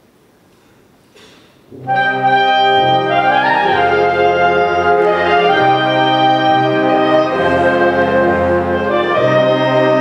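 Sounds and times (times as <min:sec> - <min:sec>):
concert band playing slow chords: 0:01.7 - 0:10.0.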